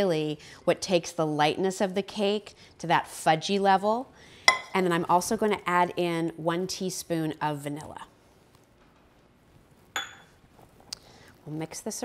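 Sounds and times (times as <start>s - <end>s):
metal cup clinking on stone: 10.0s - 10.3s.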